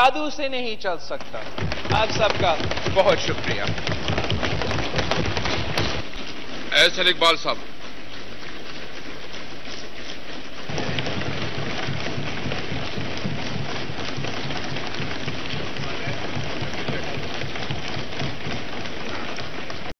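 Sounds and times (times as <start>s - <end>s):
thumping desks and clapping: 1.1s - 6.9s, 10.6s - 19.9s.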